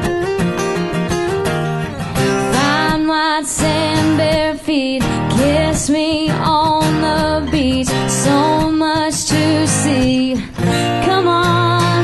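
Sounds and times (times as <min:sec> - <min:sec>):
strummed acoustic guitars: 0:00.0 - 0:12.0
woman singing: 0:02.3 - 0:12.0.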